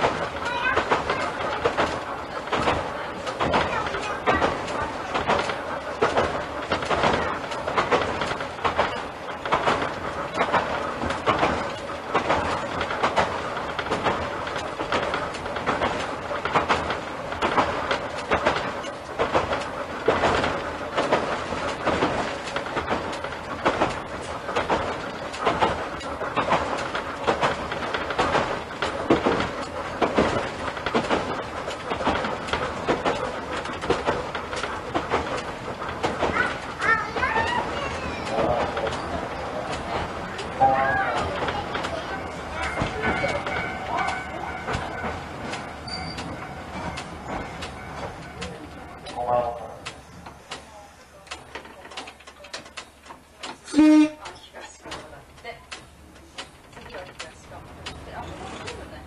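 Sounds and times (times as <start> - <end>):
steady train running noise: 0.0 - 59.0
train wheels clattering over rail joints: 0.0 - 59.0.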